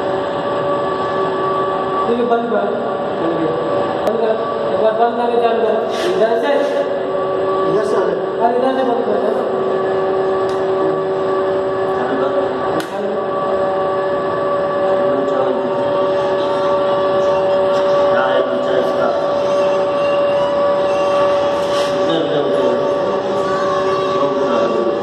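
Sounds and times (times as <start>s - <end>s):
loud machinery drone: 0.0s - 25.0s
steady tones: 0.0s - 25.0s.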